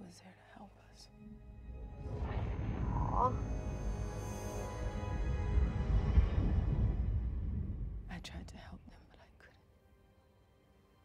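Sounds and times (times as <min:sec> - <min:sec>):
tense film score: 0:00.0 - 0:11.0
faint whispered voice: 0:08.1 - 0:09.7.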